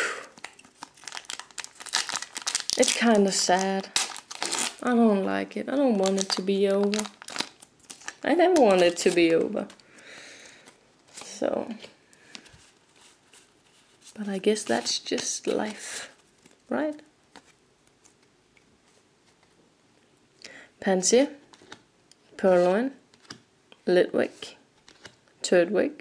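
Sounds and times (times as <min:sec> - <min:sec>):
foil wrapper crinkling and tearing: 0:00.4 - 0:04.8, 0:06.0 - 0:09.8
trading cards being handled: 0:06.1 - 0:19.6.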